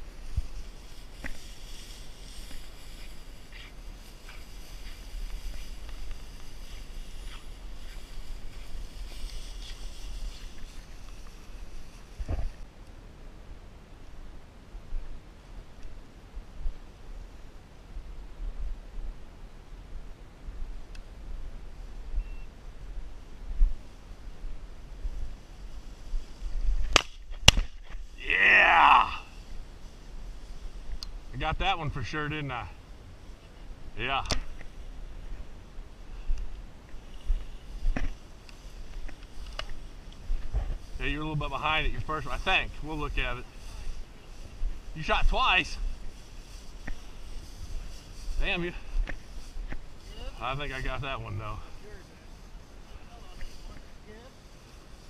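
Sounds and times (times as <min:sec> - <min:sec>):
footsteps through dry grass: 0:00.0 - 0:12.8, 0:20.0 - 0:55.0
wind rumbling on microphone: 0:00.0 - 0:12.8, 0:13.4 - 0:55.0.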